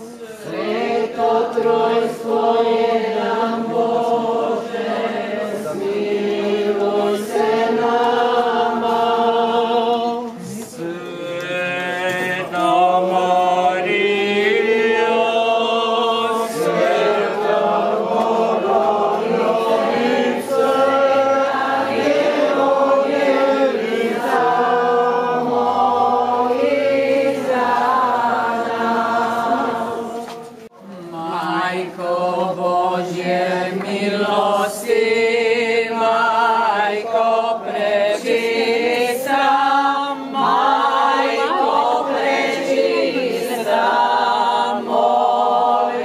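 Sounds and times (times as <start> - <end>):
group chanting a hymn: 0.0 - 46.0.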